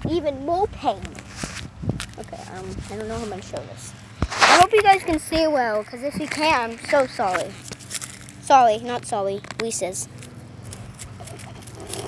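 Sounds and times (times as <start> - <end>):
stick scraping dry dirt: 1.0 - 3.6, 4.2 - 8.5, 9.4 - 12.0.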